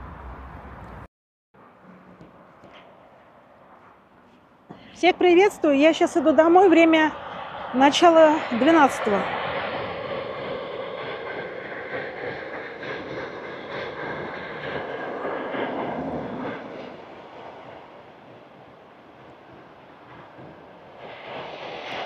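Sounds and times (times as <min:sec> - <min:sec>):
car passing: 0:00.0 - 0:22.0
low traffic hum: 0:00.0 - 0:22.0.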